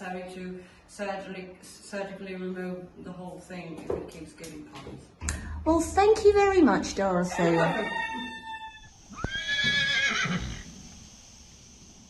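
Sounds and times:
horse whinnying: 0:07.4 - 0:10.7.

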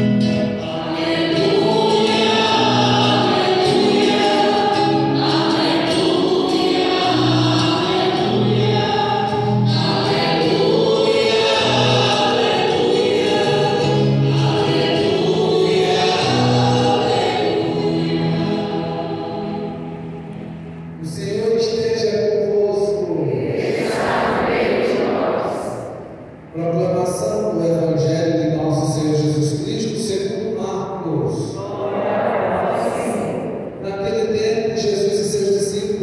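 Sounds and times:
choir and congregation singing: 0:00.0 - 0:21.8, 0:22.4 - 0:28.0, 0:31.3 - 0:36.0.

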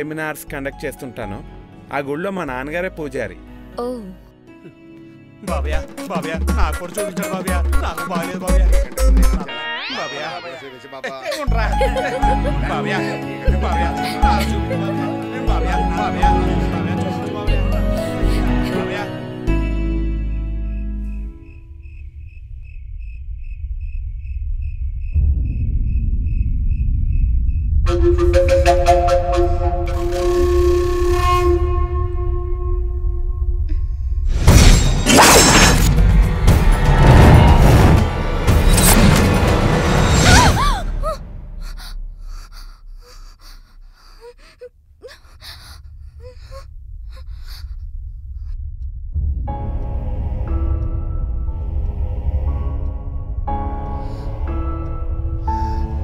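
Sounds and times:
music: 0:00.0 - 0:22.2, 0:27.7 - 0:42.5, 0:49.1 - 0:56.0
crickets chirping: 0:20.1 - 0:27.8
woman gasping and panting: 0:40.2 - 0:48.6
short whimpering cries: 0:40.3 - 0:47.8
low drone: 0:44.8 - 0:56.0.

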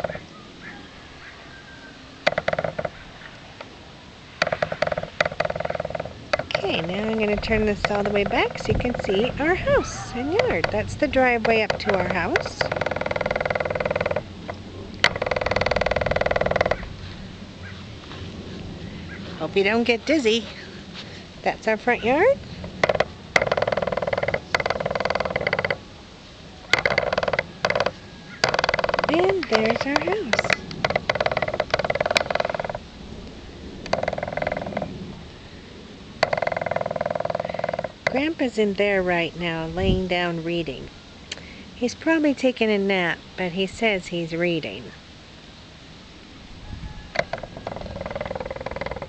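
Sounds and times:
animal rapid trill: 0:04.4 - 0:16.9.

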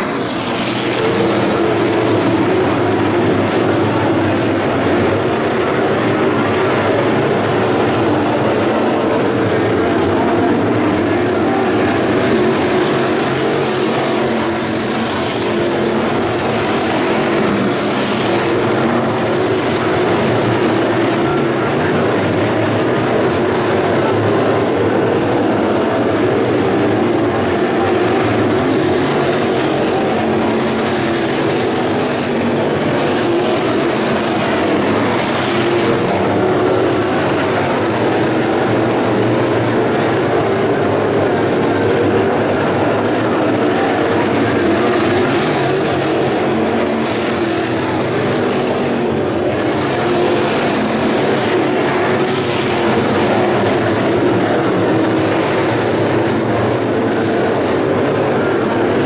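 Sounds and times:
race car engines: 0:00.0 - 0:59.0.

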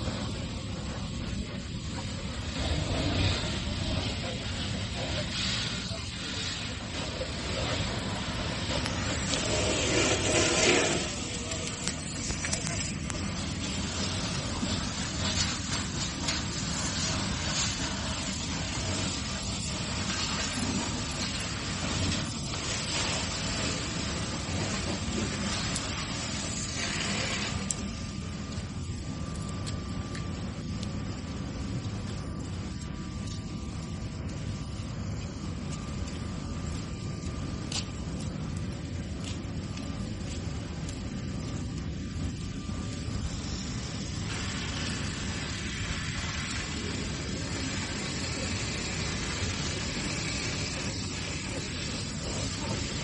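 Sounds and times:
hissing steam: 0:00.0 - 0:28.8, 0:42.2 - 0:53.0
low rumble of fire: 0:00.0 - 0:53.0
water spray hissing: 0:02.5 - 0:12.9, 0:44.3 - 0:53.0.

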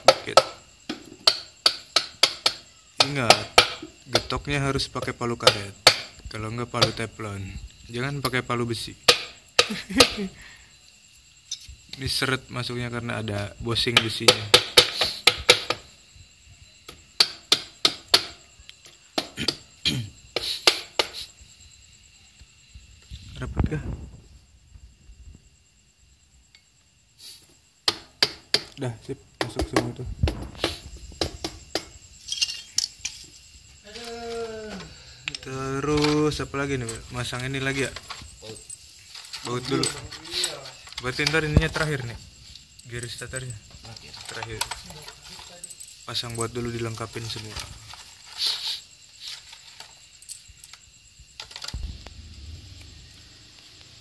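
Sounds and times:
low hum: 0:51.8 - 0:54.0.

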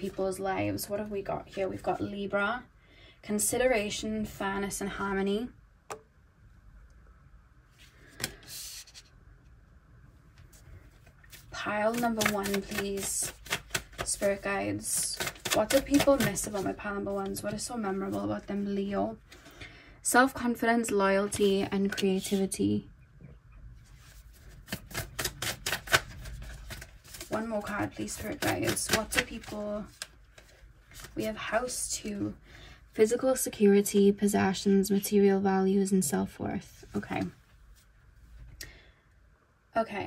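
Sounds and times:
card sliding across surface: 0:07.8 - 0:09.1
cards being shuffled by hand: 0:07.8 - 0:09.1, 0:10.4 - 0:18.4, 0:24.0 - 0:31.4.

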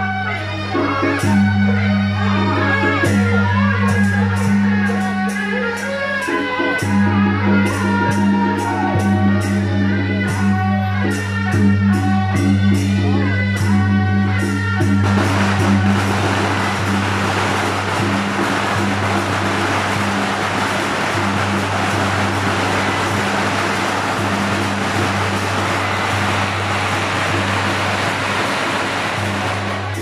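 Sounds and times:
firecrackers crackling: 0:14.8 - 0:30.0.

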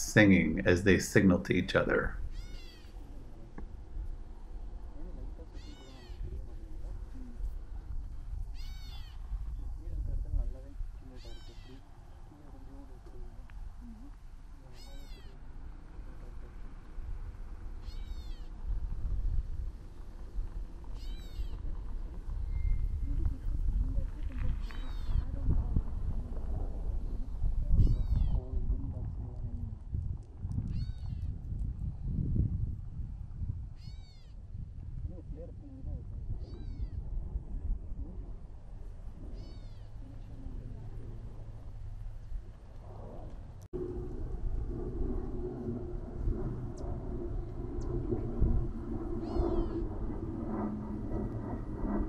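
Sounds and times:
wind gusting: 0:00.0 - 0:52.0.

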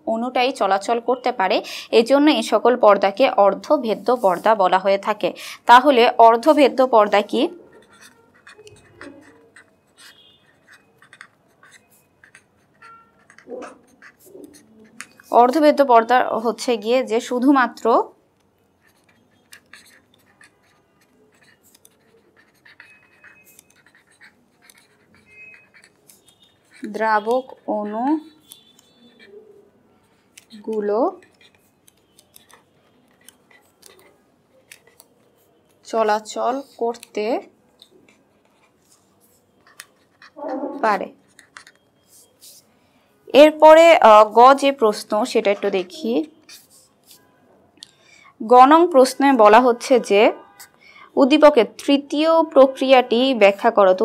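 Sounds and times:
woman speaking: 0:00.0 - 0:07.6, 0:15.3 - 0:18.2, 0:26.8 - 0:28.4, 0:30.5 - 0:31.3, 0:35.9 - 0:37.5, 0:40.4 - 0:41.2, 0:43.3 - 0:46.4, 0:48.4 - 0:50.5, 0:51.2 - 0:54.0
pen scratching on paper: 0:00.5 - 0:42.7, 0:43.4 - 0:47.4, 0:48.6 - 0:54.0.

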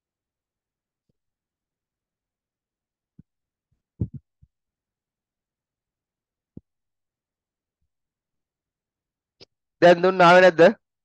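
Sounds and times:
dull low thumps: 0:04.0 - 0:04.5.

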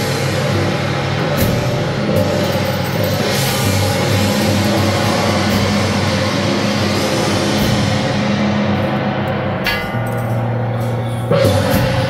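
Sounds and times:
drums: 0:00.0 - 0:12.0
hand cymbals: 0:00.0 - 0:12.0
large gong: 0:03.0 - 0:12.0.

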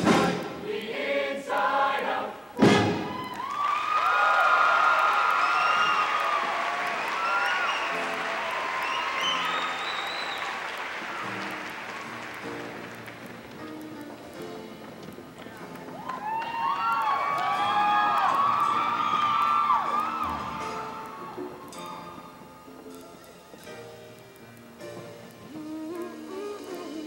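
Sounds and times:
choir singing: 0:00.0 - 0:03.2
applause: 0:03.3 - 0:13.8, 0:15.4 - 0:21.4.

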